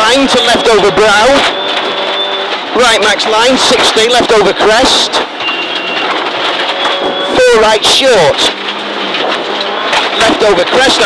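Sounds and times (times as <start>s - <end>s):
rally car engine: 0.0s - 11.0s
tyres on gravel: 0.0s - 11.0s.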